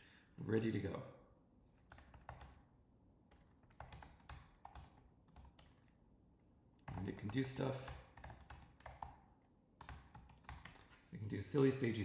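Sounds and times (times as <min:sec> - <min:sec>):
keystrokes on computer keyboard: 0:01.8 - 0:02.7, 0:03.3 - 0:06.0, 0:06.8 - 0:11.1.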